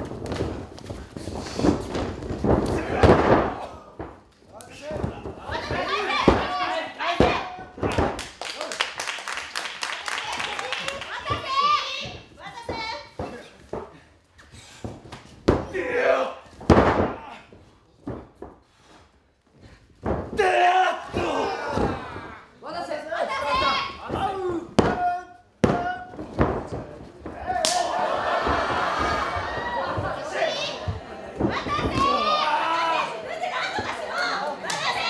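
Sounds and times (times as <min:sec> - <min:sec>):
bodies thudding on ring mat: 0:00.0 - 0:08.2, 0:16.5 - 0:18.8, 0:19.6 - 0:20.4, 0:23.5 - 0:27.6
wrestlers shouting: 0:02.6 - 0:04.0, 0:04.7 - 0:07.8, 0:15.6 - 0:16.5, 0:20.4 - 0:26.2, 0:27.3 - 0:35.0.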